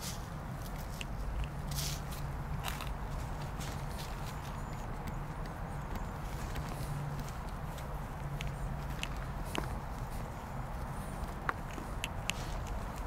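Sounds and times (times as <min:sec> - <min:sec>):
hands digging through soil: 0:00.0 - 0:13.0
steady low hum: 0:00.0 - 0:13.0.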